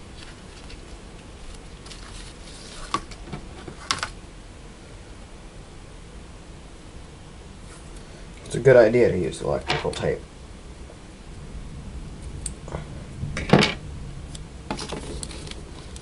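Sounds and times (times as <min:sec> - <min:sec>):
paper rustling: 0:00.0 - 0:04.2, 0:14.7 - 0:16.0
steady low hiss: 0:00.0 - 0:16.0.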